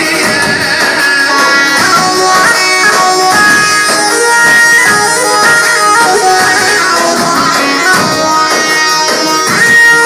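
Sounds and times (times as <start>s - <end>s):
folk dance music on synthesizer: 0.0s - 10.0s.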